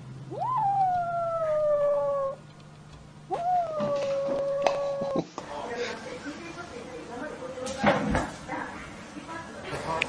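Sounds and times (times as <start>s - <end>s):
cat meowing: 0.3s - 2.4s, 3.3s - 5.2s.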